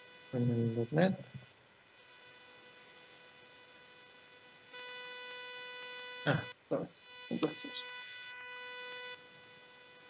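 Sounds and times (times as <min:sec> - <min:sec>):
electrical hum with whining: 0:00.0 - 0:10.0.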